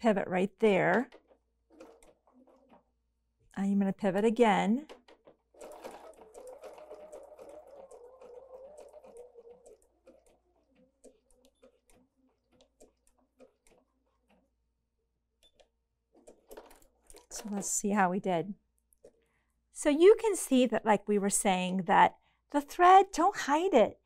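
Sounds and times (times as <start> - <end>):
sewing machine running: 0.7 - 2.8, 4.4 - 14.4.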